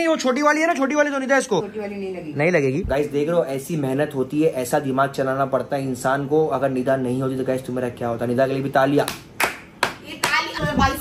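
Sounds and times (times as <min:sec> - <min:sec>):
sharp hand claps: 0:09.0 - 0:10.5.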